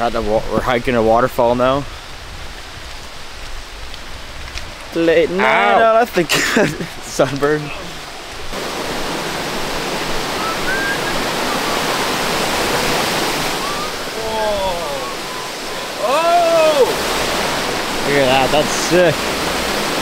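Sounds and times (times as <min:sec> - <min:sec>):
stream and waterfall over rocks: 0:00.0 - 0:20.0
person calling out: 0:05.3 - 0:06.0, 0:14.0 - 0:17.0.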